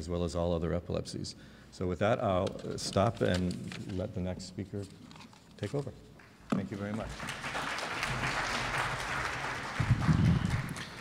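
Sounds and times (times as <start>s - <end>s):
audience applauding: 7.0s - 11.0s.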